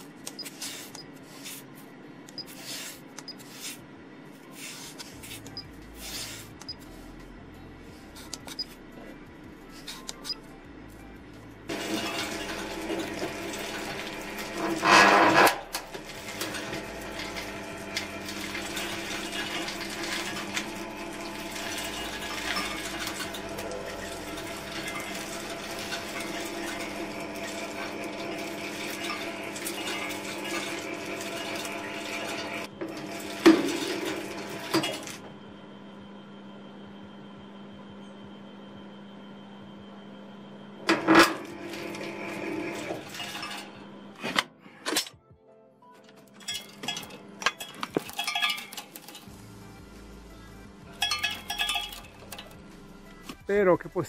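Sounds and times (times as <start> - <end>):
auger humming: 11.6 - 35.4.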